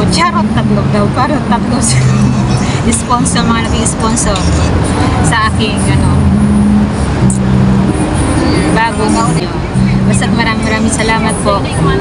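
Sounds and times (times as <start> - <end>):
road noise roar: 0.0 - 12.0
vehicle engines humming: 0.0 - 12.0.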